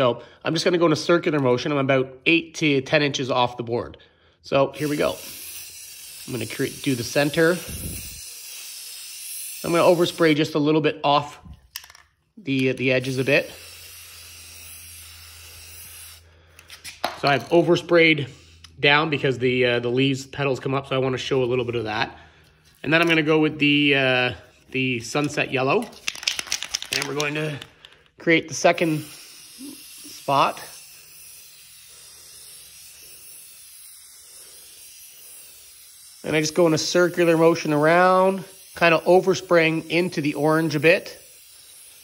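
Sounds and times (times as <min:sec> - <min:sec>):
spray paint can hissing: 0:04.8 - 0:10.6, 0:12.6 - 0:17.2, 0:25.3 - 0:27.7, 0:28.5 - 0:42.0.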